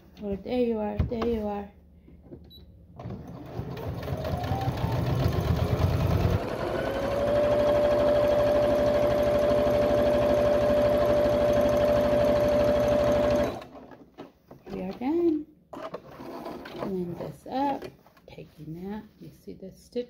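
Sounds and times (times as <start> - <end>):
sewing machine stitching: 3.0 - 17.3.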